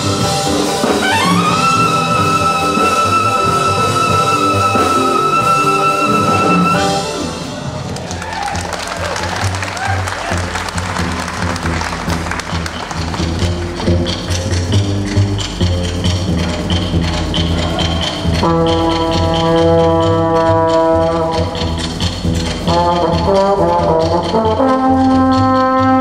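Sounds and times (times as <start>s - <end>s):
big band latin groove: 0.0s - 26.0s
trombone solo: 0.8s - 7.3s, 18.4s - 21.5s, 22.7s - 26.0s
trumpet solo: 0.8s - 7.4s
audience applause: 7.6s - 13.9s.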